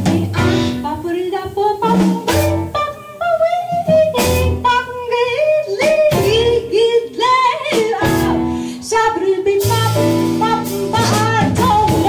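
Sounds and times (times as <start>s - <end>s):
double bass: 0.0s - 3.1s, 3.8s - 5.0s, 9.6s - 12.0s
drum kit: 0.0s - 12.0s
grand piano: 0.0s - 12.0s
woman singing: 0.0s - 12.0s.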